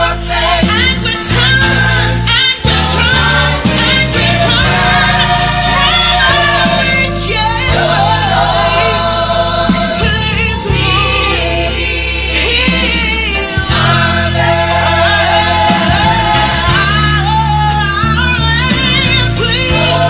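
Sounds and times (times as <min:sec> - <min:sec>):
christian song singing: 0:00.0 - 0:20.0.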